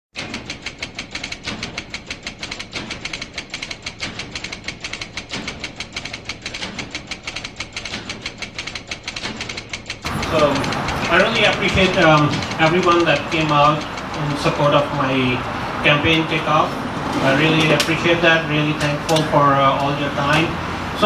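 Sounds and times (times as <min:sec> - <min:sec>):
fast even ticking: 0:00.2 - 0:21.0.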